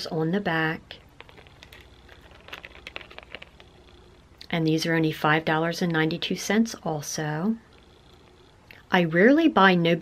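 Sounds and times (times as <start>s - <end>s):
earrings clicking and tapping: 1.0s - 3.9s.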